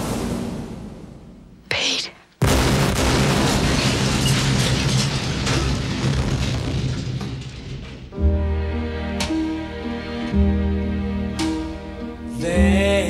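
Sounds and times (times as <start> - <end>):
aircraft explosion blast: 2.4 - 7.4
crackling debris: 2.4 - 8.2.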